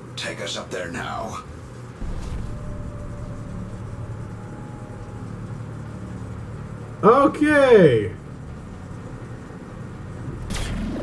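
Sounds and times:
faint thin hum: 0:01.4 - 0:07.1
low rumbling sci-fi drone: 0:01.8 - 0:07.4, 0:08.1 - 0:11.0.

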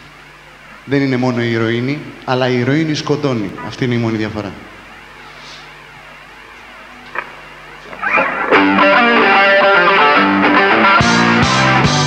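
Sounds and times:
amplifier hum and hiss: 0:00.0 - 0:12.0.

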